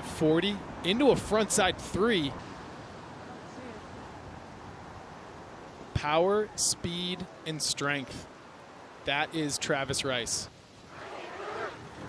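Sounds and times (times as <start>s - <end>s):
rushing wind and snow: 0.0s - 12.0s.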